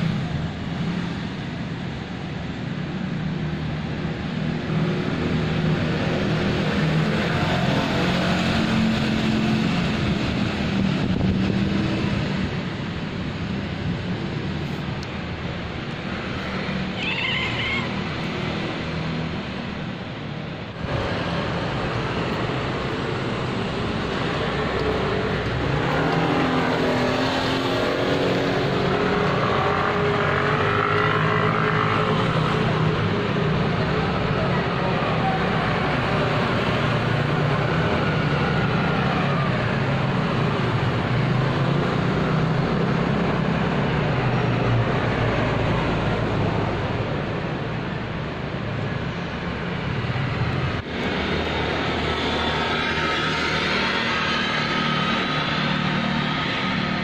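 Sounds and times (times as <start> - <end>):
vehicle engines passing: 0.0 - 57.0.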